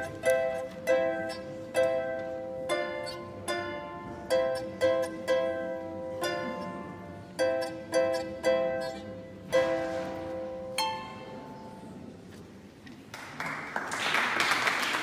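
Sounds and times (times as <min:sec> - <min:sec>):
lyre harp plucked melody: 0:00.0 - 0:12.1.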